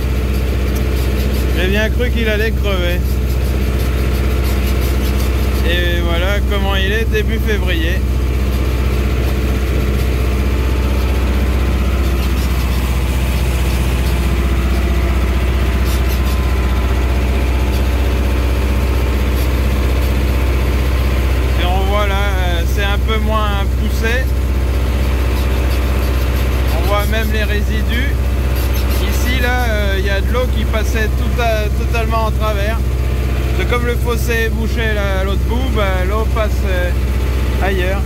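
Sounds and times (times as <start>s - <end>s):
tractor engine running: 0.0s - 38.0s.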